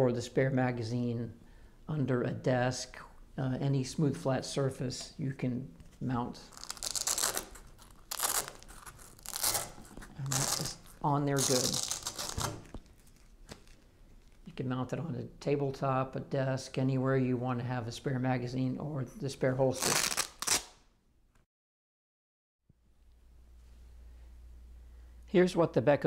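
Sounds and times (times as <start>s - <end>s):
hook-and-loop fabric tearing: 6.5s - 13.4s, 19.8s - 20.8s.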